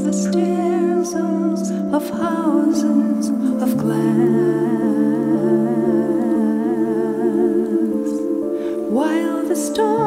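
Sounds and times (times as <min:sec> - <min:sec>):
voices humming in harmony: 0:00.0 - 0:10.0.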